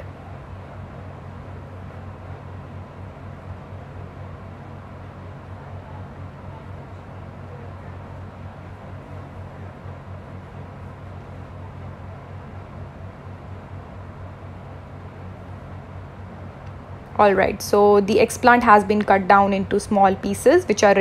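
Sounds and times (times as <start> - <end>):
blower humming: 0.0 - 21.0.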